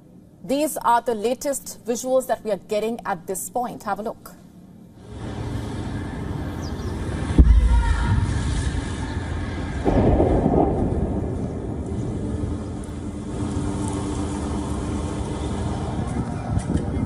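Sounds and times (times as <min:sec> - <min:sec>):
explosion rumble: 0:07.2 - 0:12.8.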